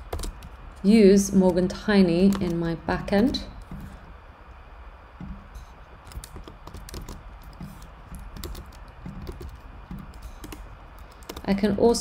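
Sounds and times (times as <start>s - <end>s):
keyboard typing: 0.0s - 4.0s, 5.2s - 11.8s.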